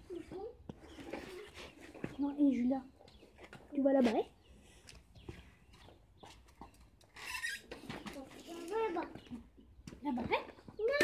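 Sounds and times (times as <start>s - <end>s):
children's voices: 0.0s - 2.4s, 7.9s - 9.5s.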